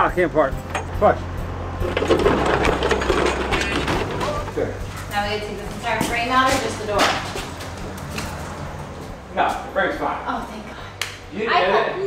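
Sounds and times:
crate scraping over pavement: 1.8s - 8.7s.

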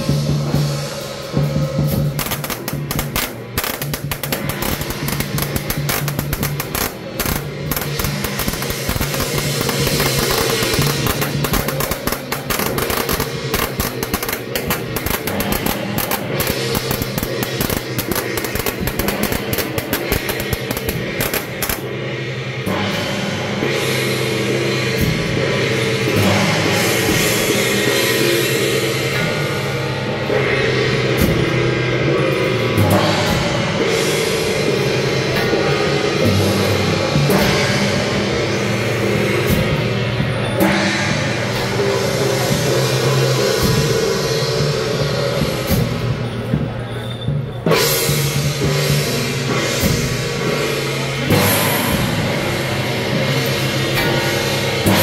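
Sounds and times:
clatter of rapid sharp strikes: 0.0s - 55.0s
drum and gongs beaten rhythmically: 0.0s - 55.0s.

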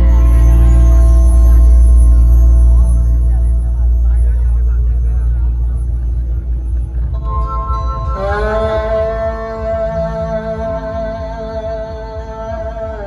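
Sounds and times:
deep bass: 0.0s - 13.0s
loud music over loudspeakers: 0.0s - 13.0s
sustained melody line: 0.0s - 13.0s.

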